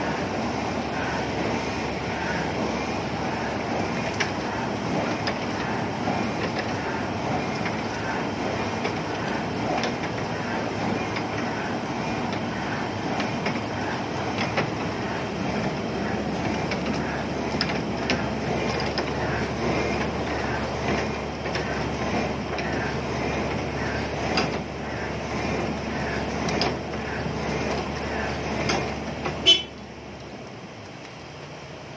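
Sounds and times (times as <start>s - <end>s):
diesel machinery running: 0.0s - 31.9s.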